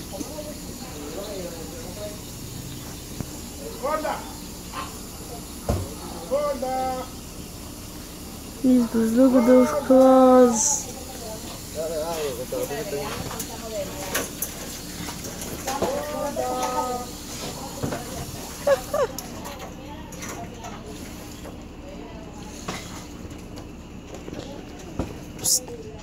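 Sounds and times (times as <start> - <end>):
indistinct voices talking: 0.0 - 22.6.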